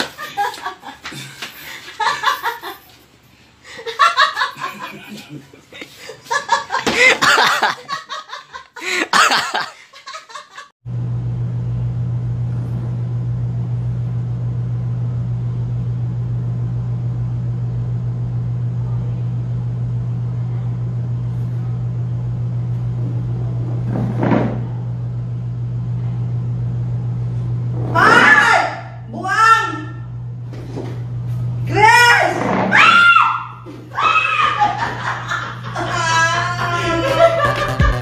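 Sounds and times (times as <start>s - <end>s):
laughter: 0.0s - 3.0s, 3.7s - 10.7s, 34.2s - 37.9s
low hum: 10.9s - 28.2s, 29.9s - 31.8s.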